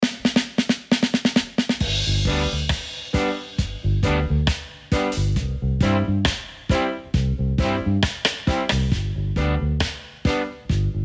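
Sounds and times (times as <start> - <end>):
snare drum fill: 0.0 - 5.4, 8.0 - 9.1, 9.8 - 10.7
band playing with bass: 1.8 - 11.0.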